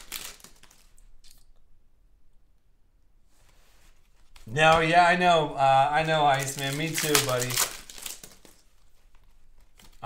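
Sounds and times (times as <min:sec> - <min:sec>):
cards being handled: 0:00.0 - 0:01.0, 0:06.0 - 0:10.0
foil wrapper crinkling: 0:00.0 - 0:01.4, 0:06.0 - 0:10.0.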